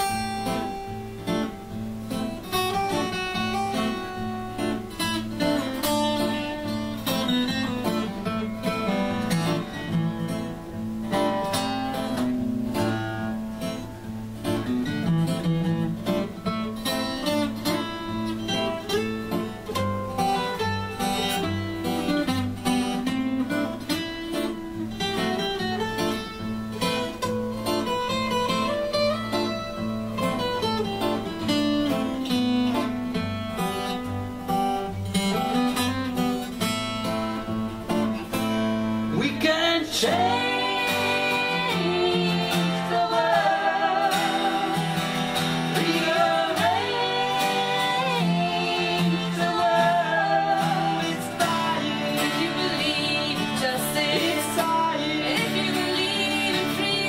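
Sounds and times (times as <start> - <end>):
acoustic guitar lead solo: 0.0 - 57.0
acoustic guitar strumming: 0.0 - 57.0.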